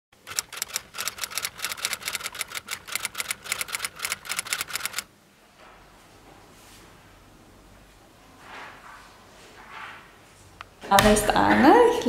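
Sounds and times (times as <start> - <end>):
typewriter keys clacking: 0.3 - 5.0.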